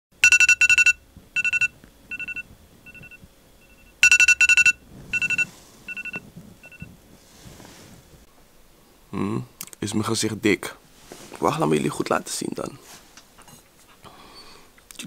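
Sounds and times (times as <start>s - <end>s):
phone alarm beeping: 0.2s - 6.9s.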